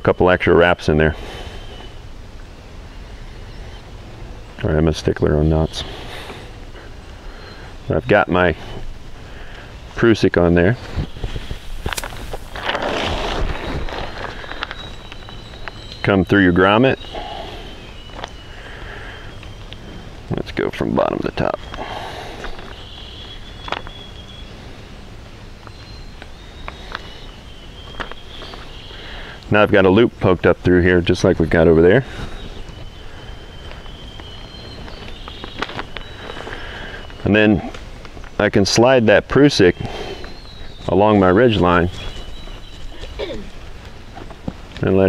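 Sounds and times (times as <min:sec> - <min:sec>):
reflective tarp crinkling: 0:10.7 - 0:16.2, 0:32.1 - 0:38.4.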